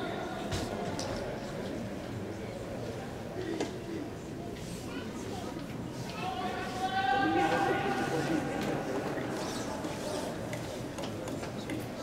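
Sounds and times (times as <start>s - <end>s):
indoor hall murmur: 0.0s - 12.0s.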